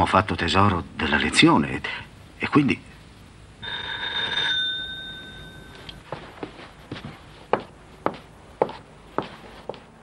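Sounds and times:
electric doorbell ringing: 3.6s - 6.0s.

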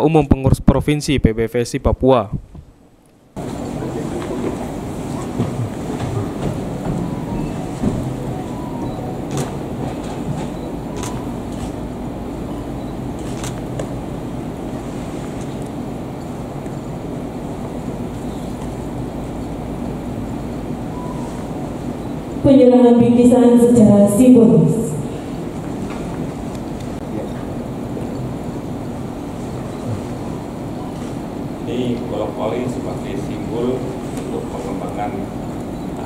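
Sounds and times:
large hall room noise: 0.0s - 36.0s.

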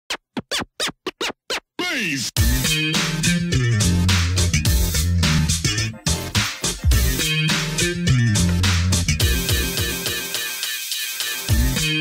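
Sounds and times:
turntable scratching: 0.1s - 12.0s.

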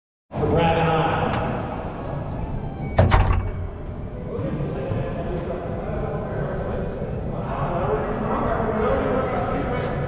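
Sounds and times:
door slamming shut: 3.0s - 3.8s.

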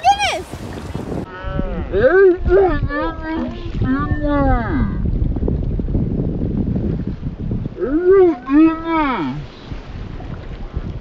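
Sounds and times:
pitch-bending voice: 0.0s - 0.5s
wind rumbling on microphone: 0.0s - 11.0s.

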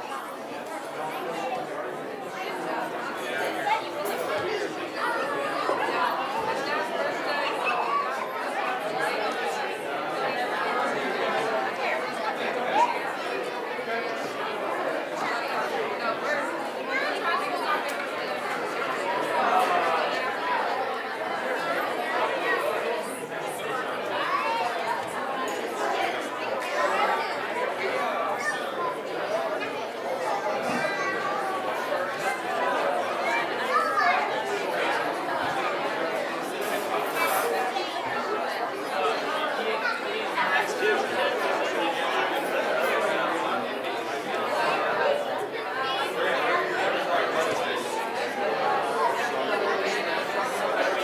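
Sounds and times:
crowd chatter in a large room: 0.0s - 51.0s.

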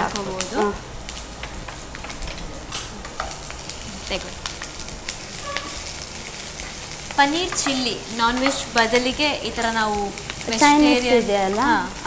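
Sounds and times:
oil crackles: 0.0s - 12.0s
vegetables sizzling in hot oil: 0.0s - 12.0s.

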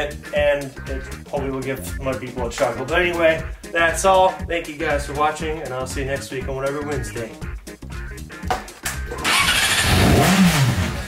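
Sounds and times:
motorcycle engine starting and revving: 9.1s - 11.0s.

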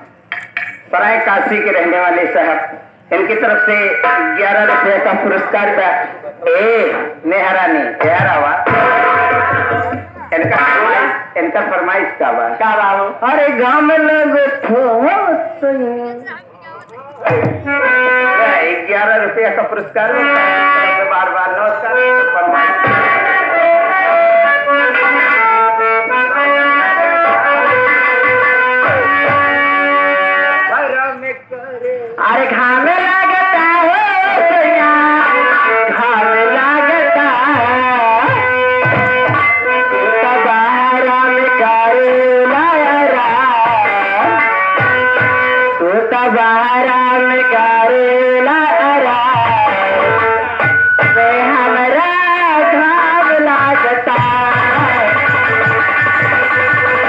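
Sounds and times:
drum strokes: 8.0s - 11.3s, 17.2s - 18.4s, 22.7s - 23.5s, 27.2s - 30.2s, 37.3s - 40.0s, 43.1s - 45.8s, 49.1s - 51.5s, 53.5s - 57.0s
person singing: 31.8s - 38.9s, 39.6s - 45.0s, 45.6s - 55.9s.

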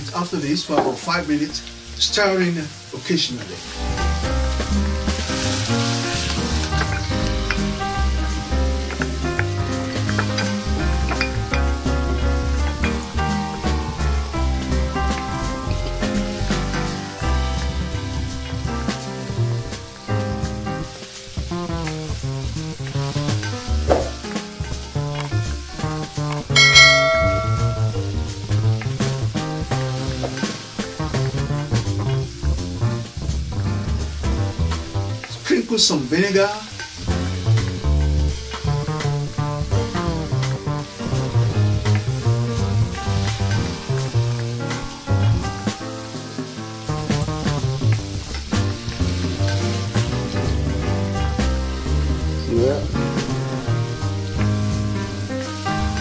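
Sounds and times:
vegetables sizzling in oil: 0.0s - 56.0s
background music with bass: 1.1s - 35.5s, 36.7s - 56.0s
bright ringing tone: 26.6s - 28.0s.

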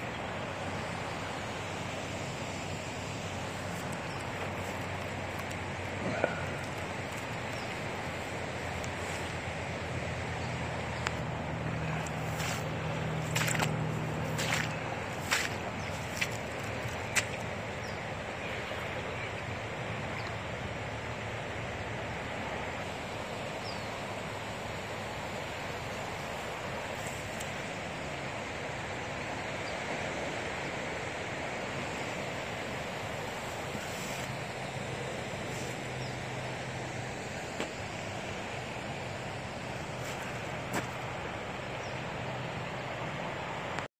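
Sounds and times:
river rushing: 0.0s - 43.9s.

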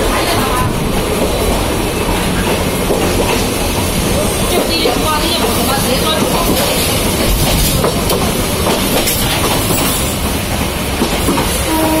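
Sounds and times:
train wheels rattling on rails: 0.0s - 12.0s.

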